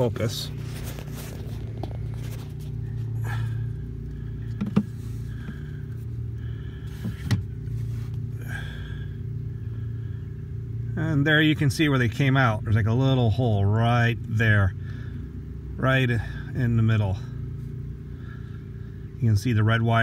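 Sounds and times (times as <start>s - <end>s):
light rustling: 0.0s - 3.4s
truck engine humming: 0.0s - 20.0s.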